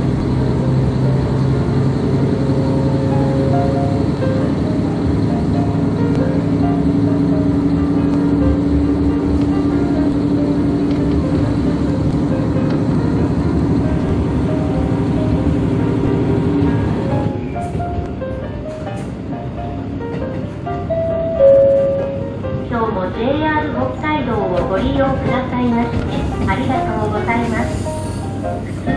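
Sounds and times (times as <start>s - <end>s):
diesel railcar engine drone: 0.0s - 28.9s
music: 0.3s - 28.9s.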